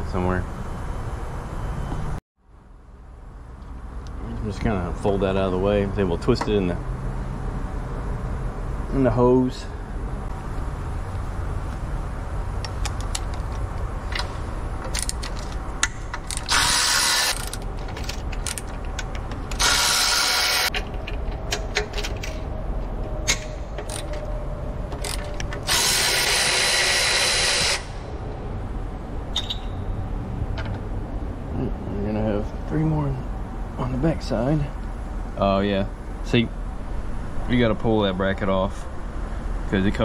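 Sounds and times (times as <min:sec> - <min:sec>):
tools clicking: 0:12.6 - 0:22.5, 0:23.3 - 0:24.3, 0:24.9 - 0:27.8
cordless ratchet running: 0:14.9 - 0:21.0, 0:23.8 - 0:24.2, 0:25.0 - 0:28.0.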